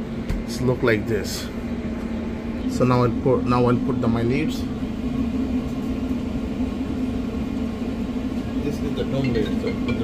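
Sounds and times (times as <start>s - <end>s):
kitchen equipment hum: 0.0s - 10.0s.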